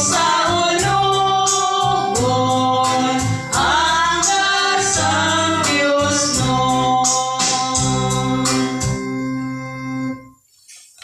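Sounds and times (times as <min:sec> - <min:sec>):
group singing a hymn: 0:00.0 - 0:09.0
instrumental accompaniment with bass: 0:00.0 - 0:10.4.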